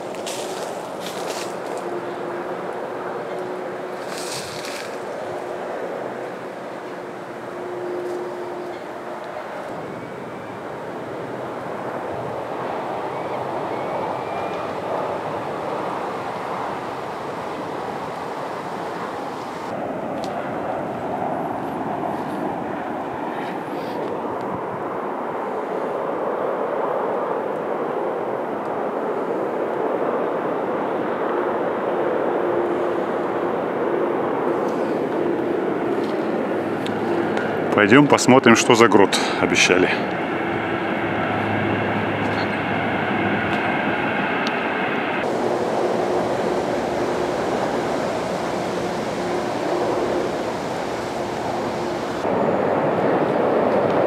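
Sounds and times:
distant motorway traffic: 0:00.0 - 0:54.0.

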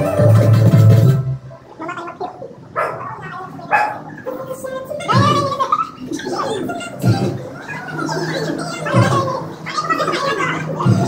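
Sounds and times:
music with heavy bass: 0:00.0 - 0:01.5, 0:10.8 - 0:11.0.

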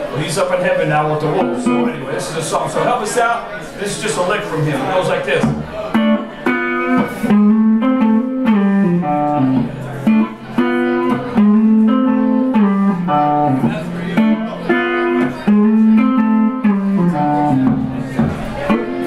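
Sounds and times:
blues electric guitar lick: 0:01.2 - 0:02.1, 0:05.4 - 0:19.0.

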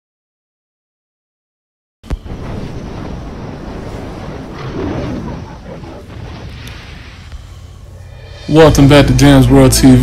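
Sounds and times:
rushing noise: 0:02.1 - 0:10.0.

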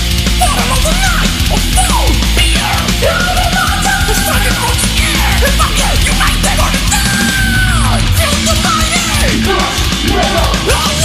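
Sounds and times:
thrash metal band playing: 0:00.0 - 0:11.0.

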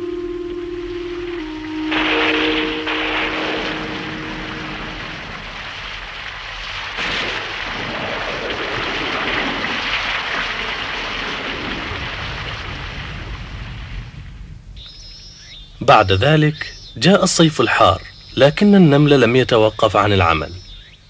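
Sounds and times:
pouring rain: 0:00.0 - 0:16.4
wind: 0:00.0 - 0:21.0.

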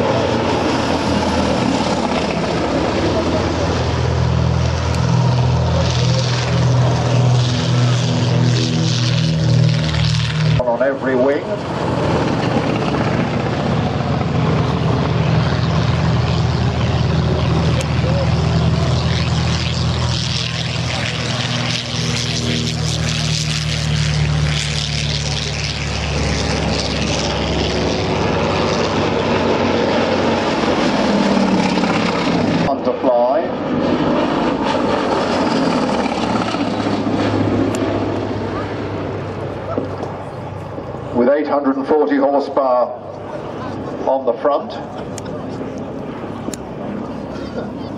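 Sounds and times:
biplane radial engine droning overhead: 0:00.0 - 0:47.9.

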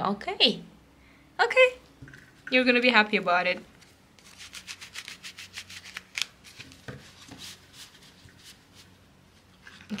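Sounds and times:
cards being shuffled: 0:03.8 - 0:08.2.

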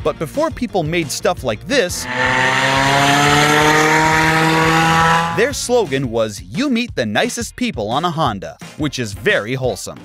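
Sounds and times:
car engine accelerating: 0:01.8 - 0:05.7.

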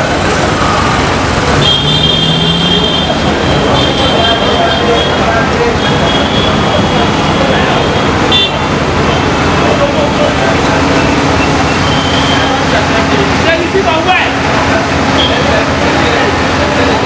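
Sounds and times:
people's voices: 0:00.0 - 0:17.0
traffic engines: 0:00.0 - 0:17.0.

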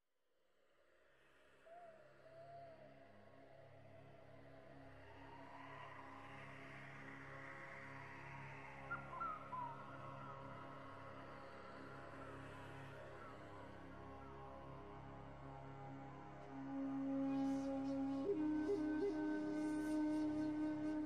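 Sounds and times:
ambient music drone: 0:01.6 - 0:21.0.

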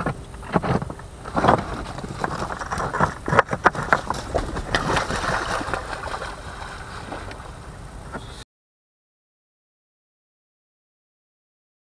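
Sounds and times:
rushing background noise: 0:00.0 - 0:08.4
splashes: 0:01.3 - 0:08.1.

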